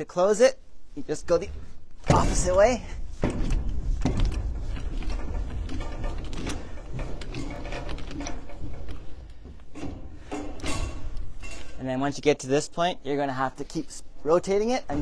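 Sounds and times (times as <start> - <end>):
hand crank clicking and clanking: 2.1 - 11.8.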